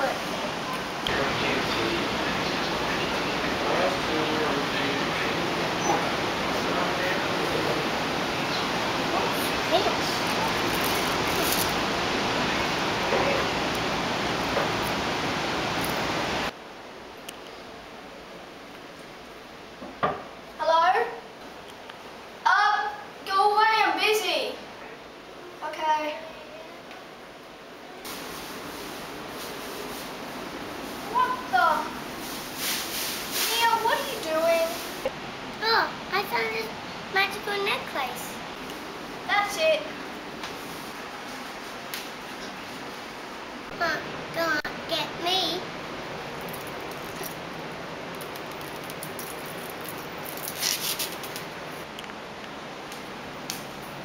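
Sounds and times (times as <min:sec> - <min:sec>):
boy speaking: 0:00.0 - 0:00.3, 0:09.1 - 0:10.3, 0:20.6 - 0:21.2, 0:22.4 - 0:24.6, 0:25.6 - 0:26.8, 0:31.0 - 0:32.0, 0:33.4 - 0:34.9, 0:35.6 - 0:38.4, 0:39.3 - 0:40.0, 0:43.7 - 0:45.7
loud background hiss: 0:00.0 - 0:54.0.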